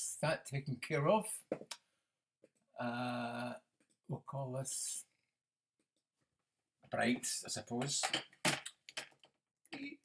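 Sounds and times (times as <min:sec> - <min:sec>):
man speaking: 0:00.0 - 0:01.5, 0:02.8 - 0:05.2, 0:06.9 - 0:08.2.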